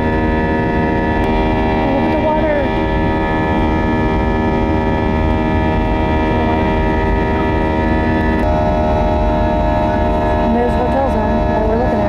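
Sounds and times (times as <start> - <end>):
jet engine rumble and airflow: 0.0 - 12.0
steady whining tones: 0.0 - 12.0.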